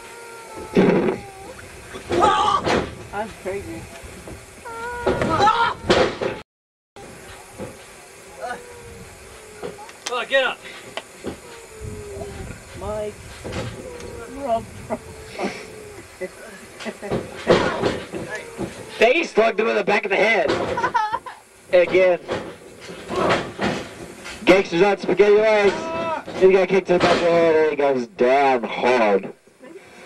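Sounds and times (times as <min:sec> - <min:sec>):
scattered knocks: 0:00.6 - 0:03.2, 0:10.8 - 0:12.8, 0:13.4 - 0:16.2, 0:16.8 - 0:19.2, 0:20.4 - 0:21.1, 0:21.8 - 0:27.5
indistinct talking: 0:07.0 - 0:20.7.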